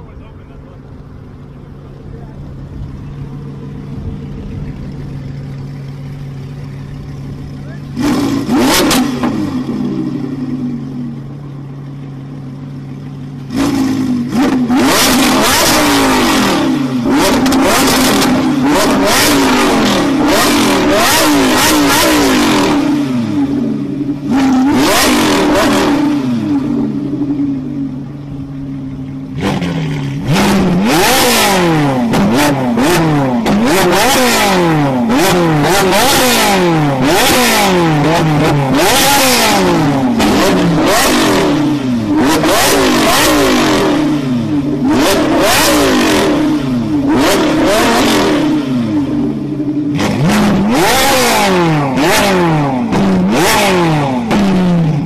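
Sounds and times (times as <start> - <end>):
car engine idling and revving: 0.0 - 55.0
second car engine revving: 0.0 - 55.0.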